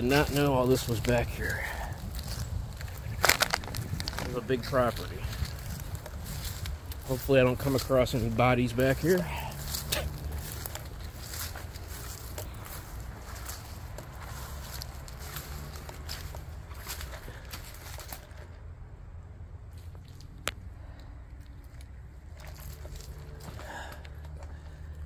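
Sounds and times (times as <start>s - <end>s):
footsteps through dry brush: 0.0s - 18.7s, 21.4s - 25.0s
low steady rumble: 1.1s - 25.0s.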